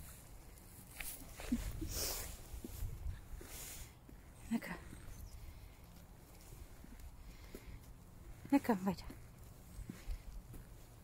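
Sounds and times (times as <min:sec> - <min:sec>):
footsteps on asphalt: 0:00.0 - 0:11.0.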